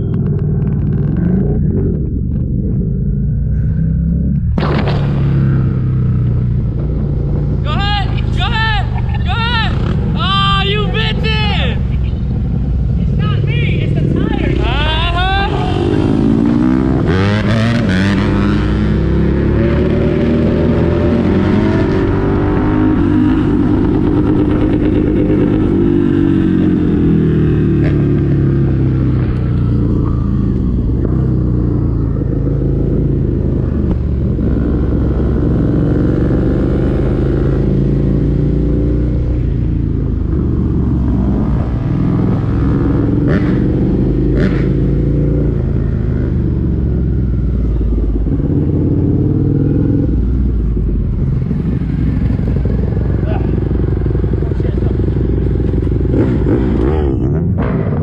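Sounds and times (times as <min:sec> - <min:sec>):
dirt bike engine revving: 0:14.0 - 0:58.0.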